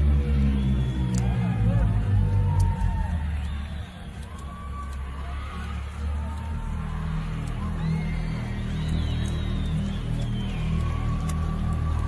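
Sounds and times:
crowd noise: 0:00.0 - 0:12.0
heavy low rumble: 0:00.0 - 0:12.0
faint high cries or whistles: 0:00.3 - 0:01.8, 0:02.4 - 0:05.8, 0:07.5 - 0:12.0.

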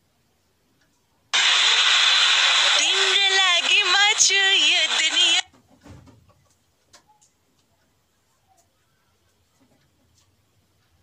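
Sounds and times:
loud steady rushing noise: 0:01.4 - 0:05.4.

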